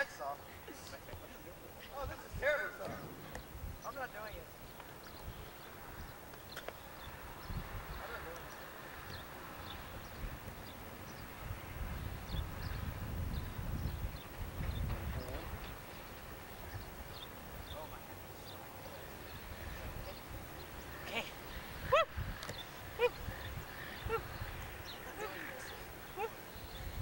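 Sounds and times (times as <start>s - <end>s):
faint chirps: 0.0s - 27.0s
low rumble on microphone: 11.4s - 15.9s.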